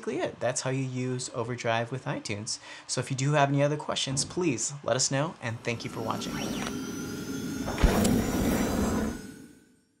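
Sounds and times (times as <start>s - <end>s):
whoosh with low rumble: 5.5s - 9.6s.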